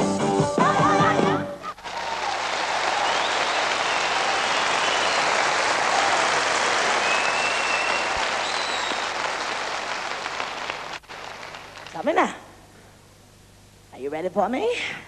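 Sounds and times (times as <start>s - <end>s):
audience applauding: 1.8s - 12.2s.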